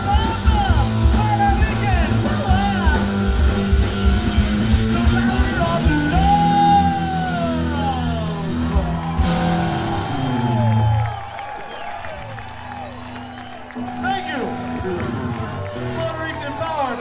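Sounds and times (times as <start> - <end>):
live rock band: 0.0 - 17.0
whoops: 6.2 - 16.9.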